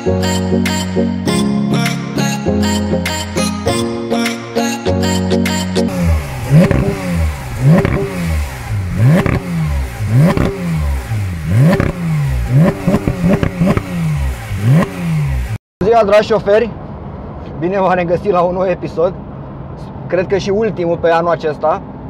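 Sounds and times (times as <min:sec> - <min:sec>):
car engine revving: 0:05.9 - 0:15.6.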